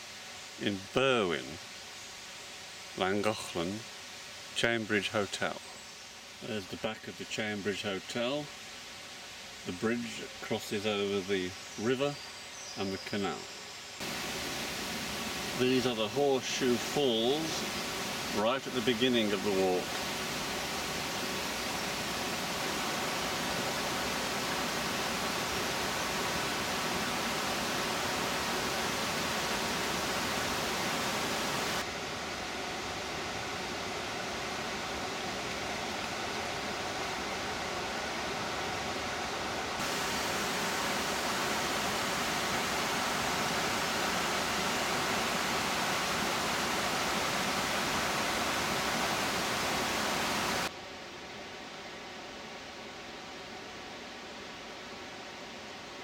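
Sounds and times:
water rushing over a weir: 14.0 - 50.7.

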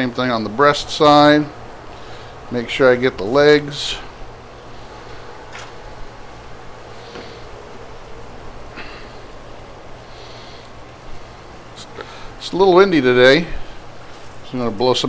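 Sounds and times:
low hum: 0.0 - 14.5.

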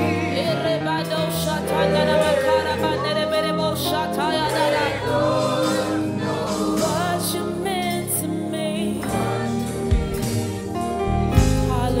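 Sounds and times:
woman singing lead: 0.0 - 12.0
bass guitar: 9.1 - 12.0
drums: 9.1 - 12.0.

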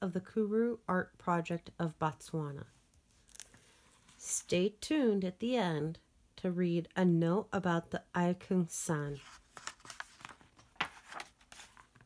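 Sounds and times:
paper pages rustling: 9.1 - 12.0
page flap: 9.2 - 12.0.

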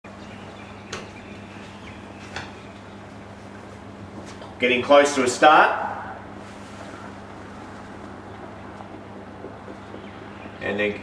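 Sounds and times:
steady hum and hiss: 0.1 - 11.0.

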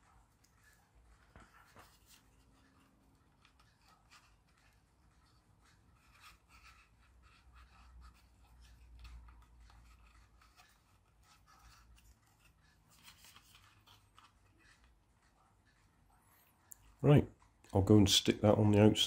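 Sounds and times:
small rubs and clicks: 0.0 - 17.7.

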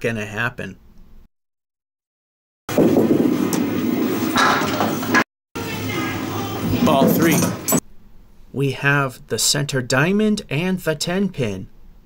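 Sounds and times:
bowling ball rolling on wooden lane: 2.7 - 5.2
bowling pins clattering: 2.8 - 5.2, 6.7 - 7.8.

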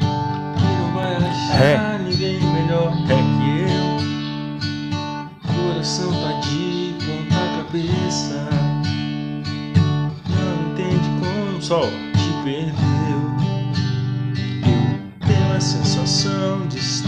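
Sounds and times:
acoustic guitar strummed slowly: 0.0 - 17.0.

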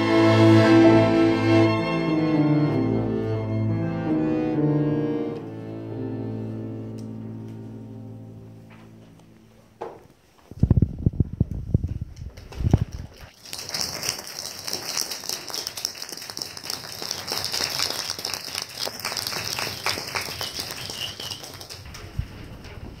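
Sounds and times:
audience applause: 13.4 - 21.9.

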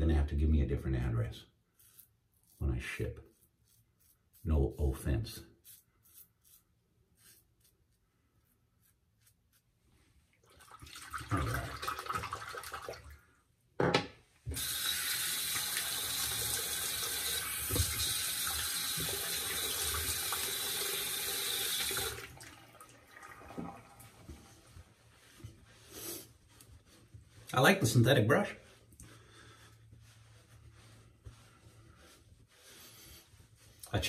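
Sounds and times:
knock: 13.8 - 14.2
sink tap running: 14.5 - 22.3.

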